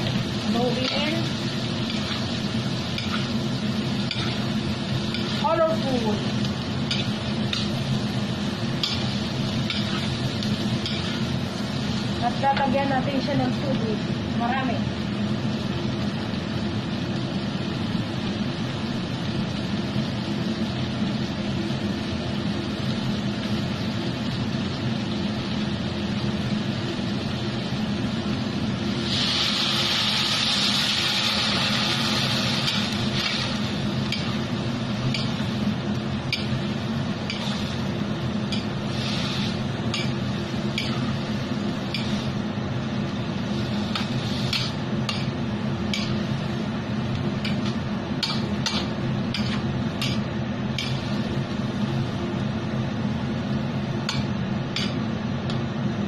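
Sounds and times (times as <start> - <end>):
metal spatula scraping wok: 0.0 - 3.4, 4.0 - 5.8, 8.8 - 11.4, 47.5 - 50.2
food stir-frying in a wok: 0.0 - 56.0
loud sizzle: 0.0 - 56.0.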